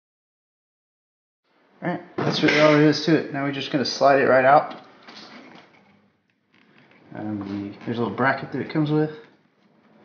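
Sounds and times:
faint handling sounds: 4.6 - 10.0.

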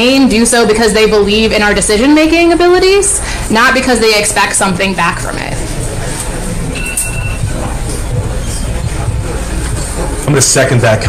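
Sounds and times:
loud background noise: 0.0 - 11.0.

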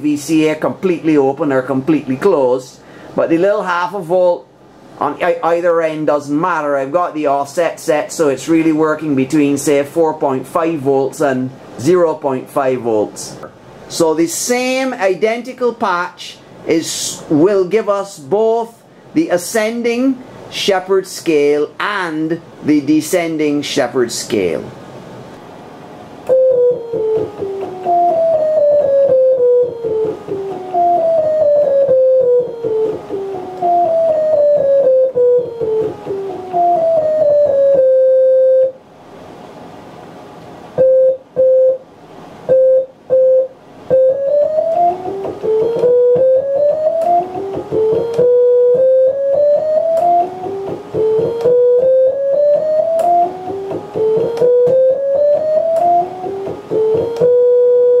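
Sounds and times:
synthesizer endless scale tones: 26.3 - 38.8, 43.9 - 58.0.

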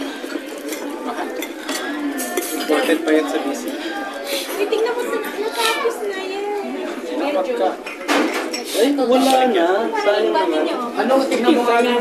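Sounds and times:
cutlery and dishes clinking: 0.0 - 3.8, 7.8 - 9.5
voices in background: 0.0 - 12.0.

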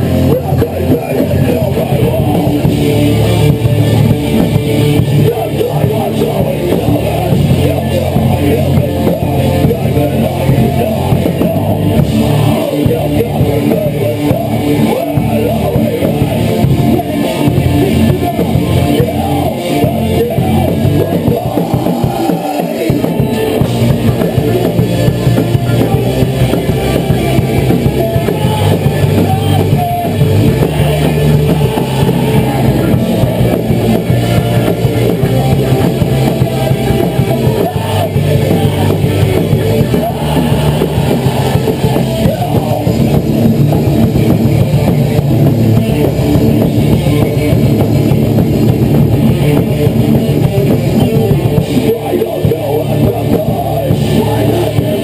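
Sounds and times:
heavy rock band playing live: 0.0 - 55.0.

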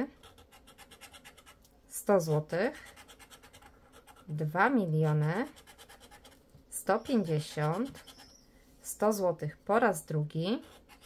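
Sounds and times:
metal pick scraping scratch card: 7.3 - 8.4.

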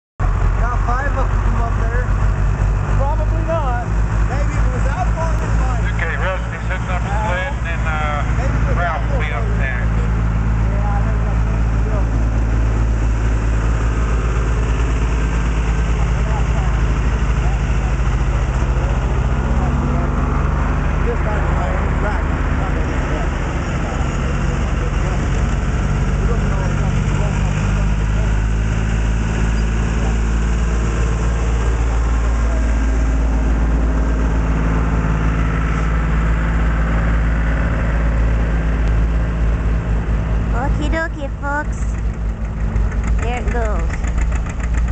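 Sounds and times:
tractor engine idling: 0.2 - 44.9
indistinct voices: 0.4 - 44.2.

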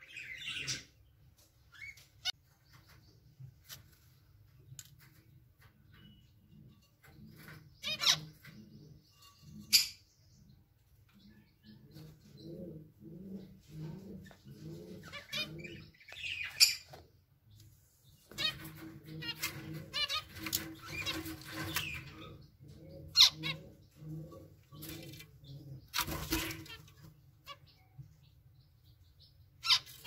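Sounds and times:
finches chirping: 5.9 - 10.6.

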